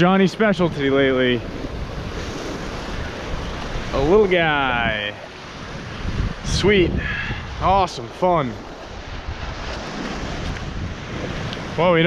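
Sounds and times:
ocean surf on rocky shore: 0.0 - 12.0
wind buffeting microphone: 0.0 - 12.0.

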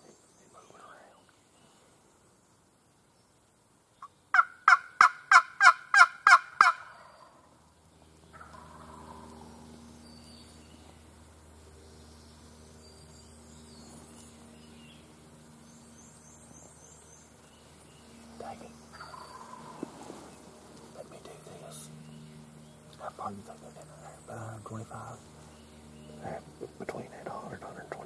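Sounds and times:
distant bird chirps: 0.0 - 28.0
turkey yelps: 4.3 - 7.2.

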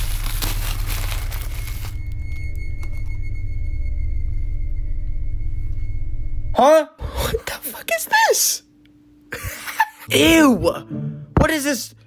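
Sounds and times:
plastic packaging crinkling and tearing: 0.0 - 2.2.

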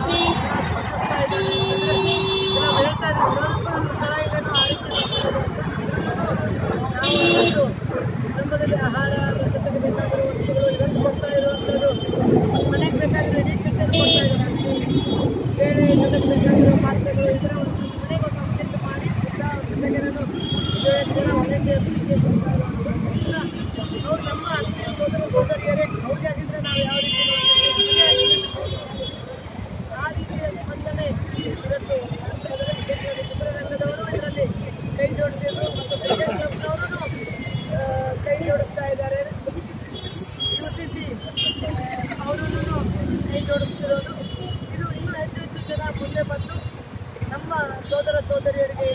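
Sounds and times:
street traffic: 0.0 - 48.9.

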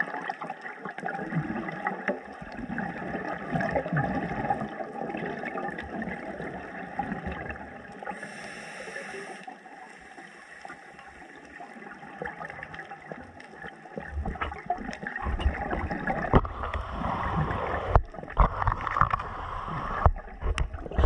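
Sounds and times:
exhaled bubbles gurgling: 0.0 - 21.0
underwater noise: 0.0 - 21.0
regulator inhale hiss: 8.0 - 11.4, 16.4 - 18.0.

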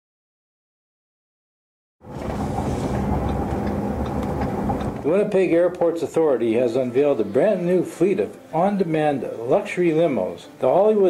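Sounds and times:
vehicle engine rumble: 2.0 - 5.1
faint hum: 2.1 - 5.4.

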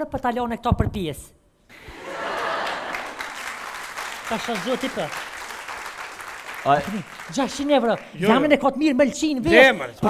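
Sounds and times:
audience applause: 1.8 - 8.5.

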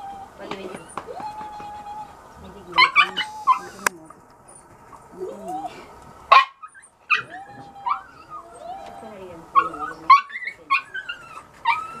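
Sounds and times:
dog whining: 0.0 - 2.2, 2.8 - 3.9, 6.6 - 12.0
dog yipping: 0.0 - 2.2, 2.8 - 3.8, 6.3 - 12.0.

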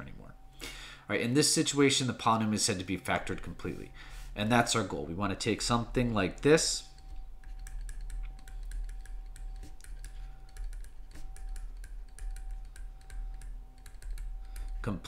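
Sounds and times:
low electrical hum: 0.0 - 15.0
stylus tapping on tablet screen: 6.9 - 15.0.

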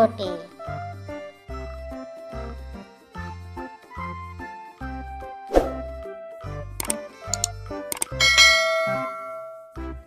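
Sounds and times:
bouncy background music: 0.0 - 10.0
notification bell chime: 7.4 - 9.9.

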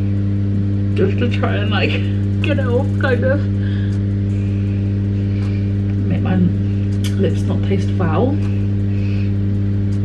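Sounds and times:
buzzy electrical hum: 0.0 - 10.0.

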